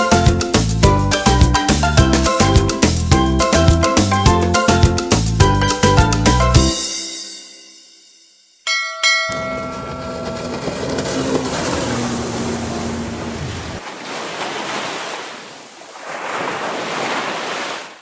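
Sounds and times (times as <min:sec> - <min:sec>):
bell ringing out: 0:06.9 - 0:11.3
low droning tone: 0:09.3 - 0:13.8
sea waves washing: 0:09.4 - 0:18.0.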